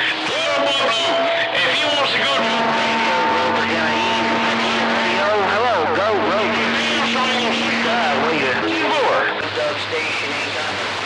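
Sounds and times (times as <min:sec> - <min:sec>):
steady whistling radio tones: 0:00.0 - 0:10.9
garbled overlapping radio voices: 0:00.0 - 0:11.0
radio static: 0:02.1 - 0:11.0.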